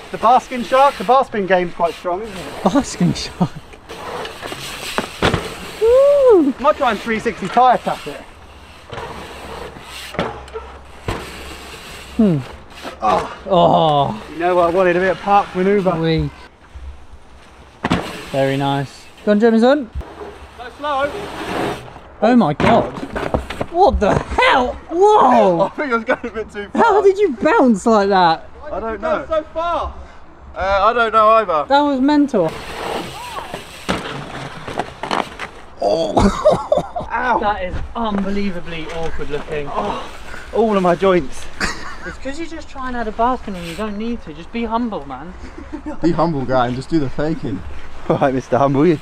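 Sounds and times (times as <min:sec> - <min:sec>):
bike rolling over loose dirt: 0:00.0 - 0:19.4, 0:32.4 - 0:35.8, 0:37.9 - 0:44.9
bike landing with a thud: 0:04.0 - 0:05.9, 0:08.9 - 0:11.7, 0:17.8 - 0:18.4, 0:22.6 - 0:24.6, 0:32.5 - 0:35.8
bike rolling over packed dirt: 0:32.5 - 0:35.8.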